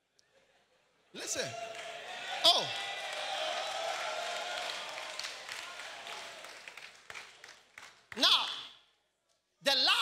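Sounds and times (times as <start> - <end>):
people applauding: 1.4 - 8.7.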